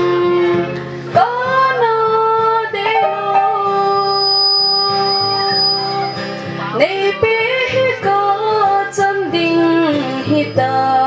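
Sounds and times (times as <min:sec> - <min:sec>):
strummed acoustic guitar: 0:00.0 - 0:11.0
person singing a held note: 0:02.9 - 0:04.4.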